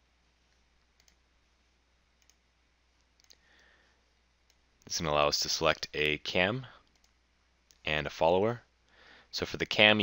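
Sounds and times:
faint computer mouse clicks: 0.5s - 1.2s, 2.2s - 2.4s, 3.0s - 3.4s.

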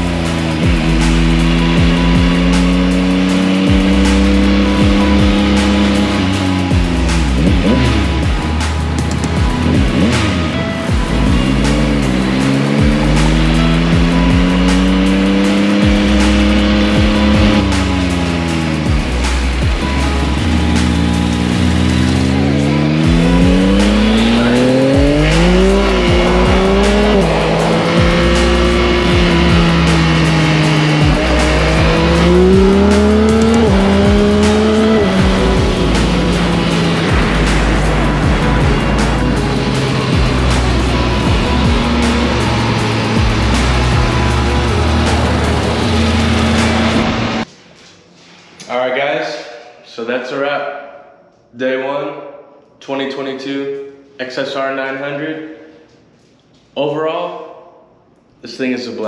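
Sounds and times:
motorcycle engine accelerating: 0.0s - 47.5s
music with bass line: 0.0s - 48.4s.

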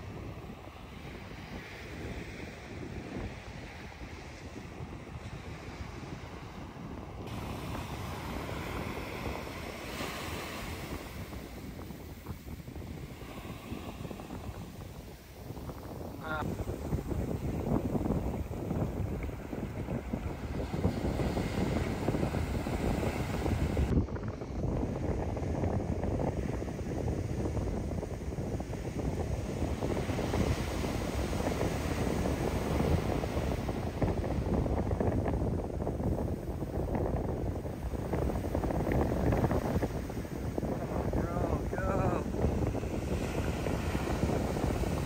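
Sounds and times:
surf breaking on beach: 0.0s - 45.0s
wind rumbling on microphone: 0.0s - 45.0s.

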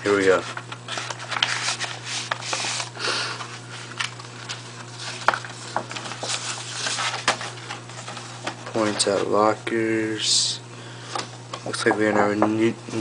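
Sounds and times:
steady low hum: 0.0s - 13.0s
paper rustling and crinkling: 0.1s - 9.4s.

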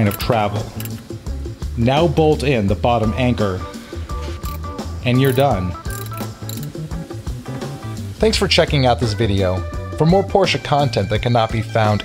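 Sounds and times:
ratcheting wrench clicks: 0.8s - 1.1s, 4.4s - 4.6s, 5.2s - 6.8s.

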